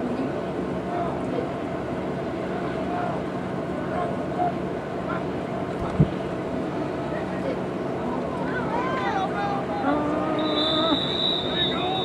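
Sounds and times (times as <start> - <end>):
people shouting: 8.5 - 12.0
referee's whistle blast: 10.4 - 12.0.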